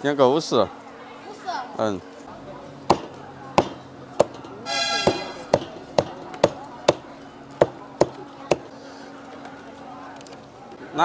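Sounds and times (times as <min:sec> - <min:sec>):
cleaver chopping on wooden block: 0:02.9 - 0:04.3, 0:05.0 - 0:07.0.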